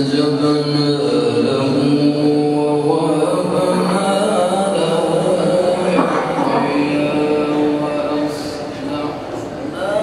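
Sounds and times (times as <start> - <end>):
man chanting melodic recitation: 0.0 - 9.0.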